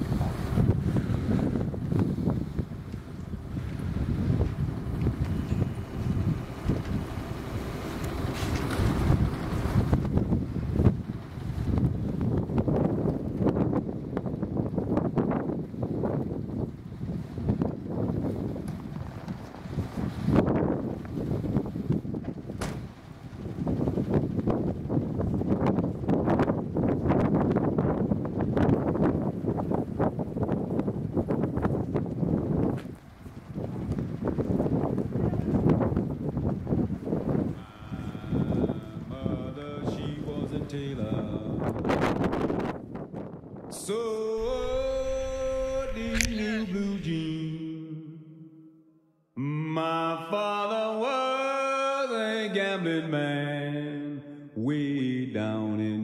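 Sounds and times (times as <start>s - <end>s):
blizzard wind buffeting microphone: 0.0s - 48.9s.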